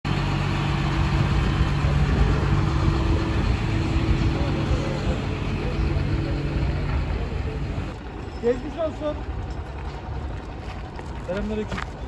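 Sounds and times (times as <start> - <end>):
excavator diesel engine humming: 0.1 - 12.0.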